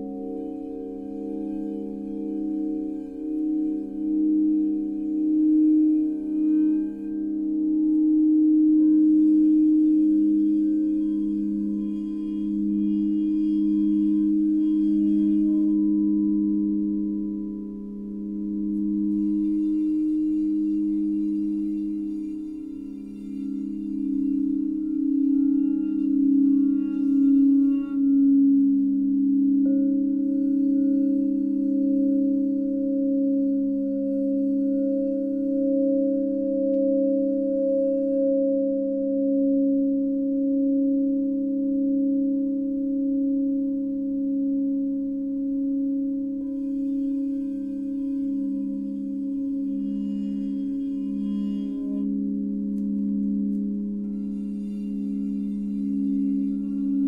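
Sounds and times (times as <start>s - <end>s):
singing bowls droning: 0.0s - 57.0s.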